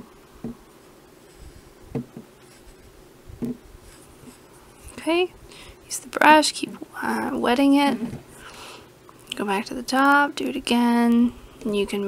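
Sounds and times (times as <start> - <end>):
paintbrush scraping on clay: 3.8 - 4.9.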